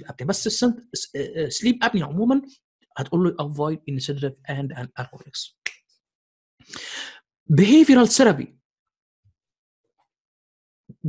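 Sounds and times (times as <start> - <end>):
man speaking: 0.0 - 5.7, 6.8 - 8.5.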